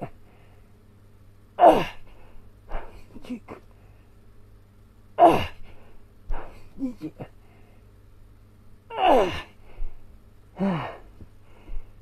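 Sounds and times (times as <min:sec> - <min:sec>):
man's effortful exhalations: 0:10.6 - 0:11.9.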